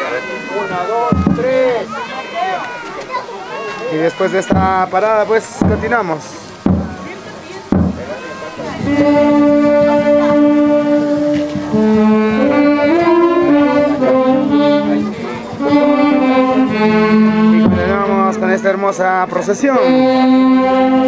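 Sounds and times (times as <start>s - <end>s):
saxophones and winds playing melody: 8.0s - 21.0s.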